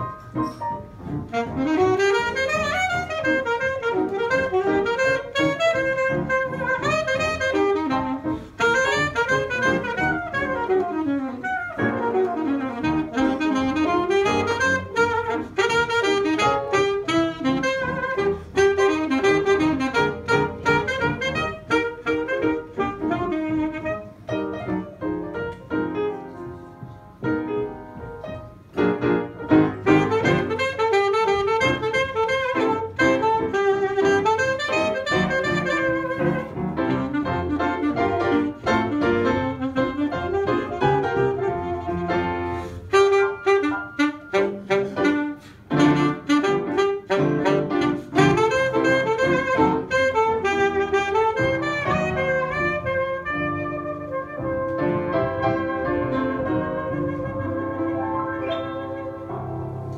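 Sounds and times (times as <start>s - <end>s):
jazz piano: 0.0s - 59.9s
saxophone melody: 0.0s - 59.9s.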